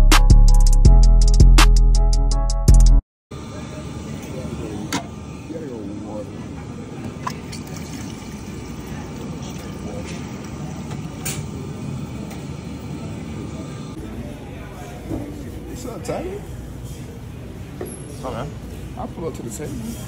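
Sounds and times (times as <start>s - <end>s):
faint indistinct voices: 3.4s - 20.0s
steady background noise: 3.4s - 20.0s.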